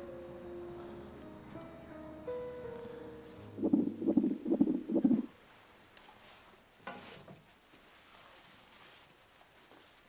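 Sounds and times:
fetal heartbeat pulsing whooshes: 3.6s - 5.3s.

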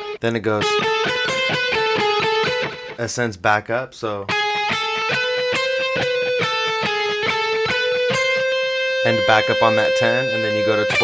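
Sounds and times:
electric guitar picked notes: 0.0s - 3.0s, 4.3s - 11.0s.

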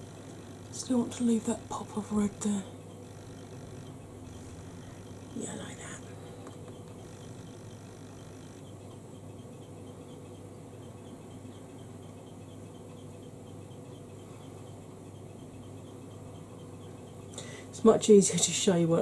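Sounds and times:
low hum: 0.0s - 17.6s.

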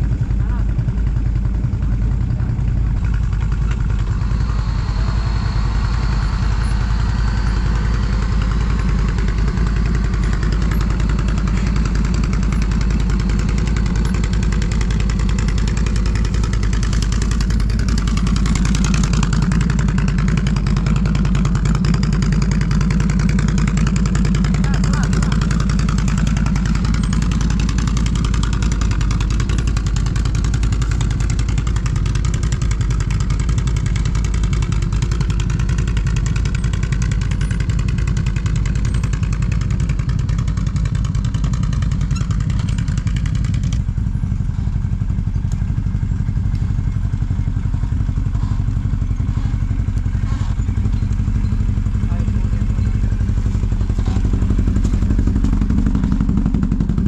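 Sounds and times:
atv engine running at low revs: 0.0s - 57.0s.

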